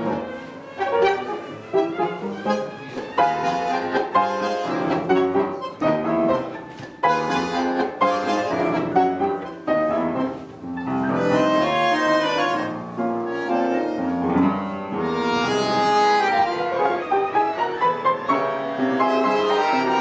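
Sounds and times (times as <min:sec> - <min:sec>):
tango music on bandoneon and piano: 0:00.0 - 0:20.0.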